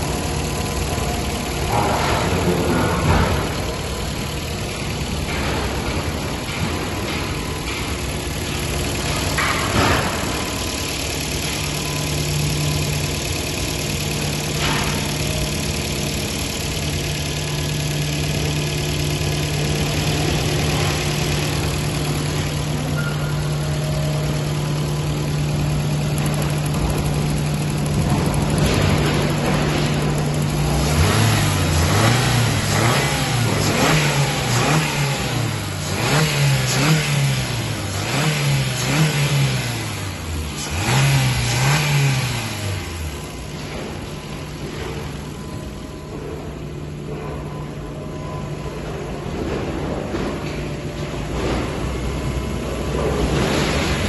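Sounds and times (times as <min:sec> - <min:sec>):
car engine idling and revving: 0:00.0 - 0:54.0.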